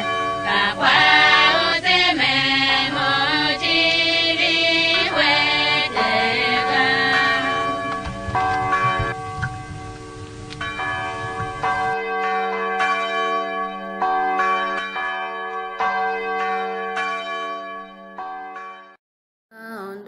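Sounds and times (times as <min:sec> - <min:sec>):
church bell tolling: 0:00.0 - 0:19.0.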